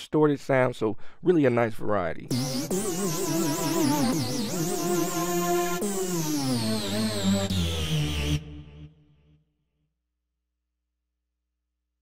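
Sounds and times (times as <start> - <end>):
synth lead pitch bending: 2.3 - 9.0.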